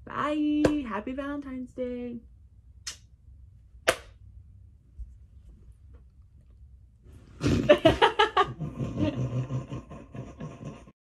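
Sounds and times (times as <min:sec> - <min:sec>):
young woman laughing: 0:07.6 - 0:10.9.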